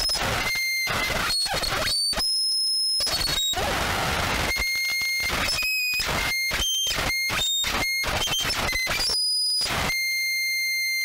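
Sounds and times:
high-pitched feedback whistle: 0.0 - 3.6, 4.5 - 11.0.

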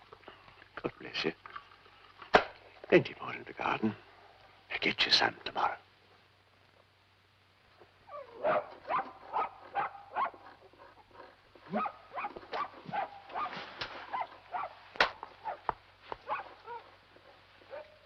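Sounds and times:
dog barking and whining: 8.1 - 14.8, 15.4 - 16.9, 17.6 - 18.0.

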